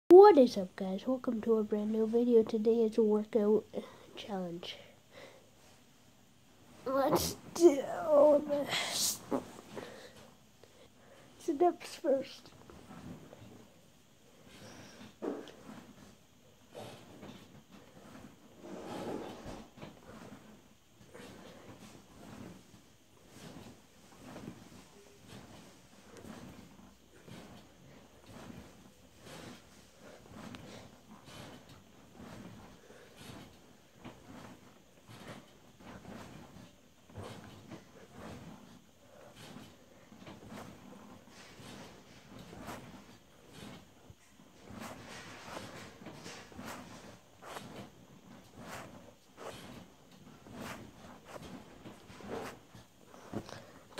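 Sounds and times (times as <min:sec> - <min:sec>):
person breathing: 0:04.8 - 0:05.5, 0:09.7 - 0:11.4
body movement rustling: 0:06.6 - 0:53.9.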